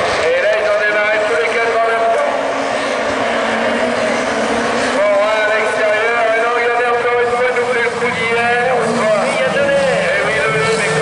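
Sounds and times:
racing car engines revving: 0.0s - 11.0s.

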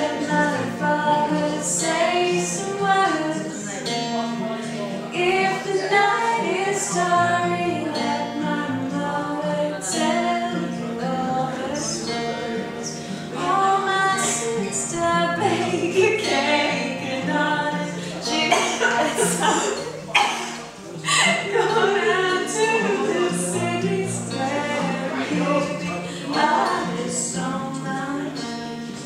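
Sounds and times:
woman singing: 0.0s - 4.1s, 5.1s - 19.8s, 21.1s - 29.0s
acoustic guitar: 0.0s - 29.0s.

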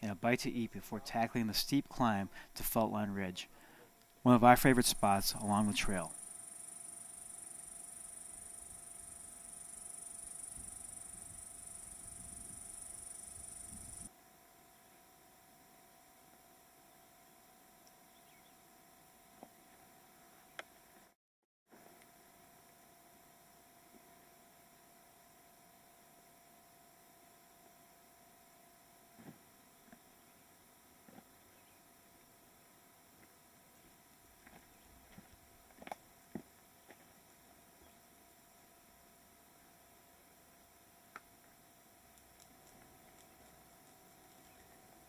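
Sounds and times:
low hum: 0.1s - 14.1s.

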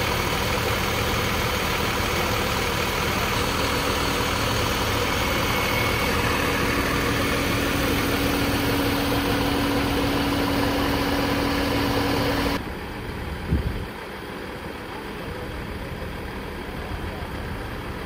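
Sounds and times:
steady droning tone: 0.0s - 13.6s
fire engine diesel engine running: 0.0s - 18.0s.

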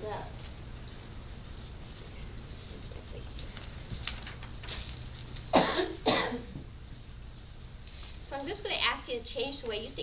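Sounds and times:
woman coughing: 5.5s - 6.6s.

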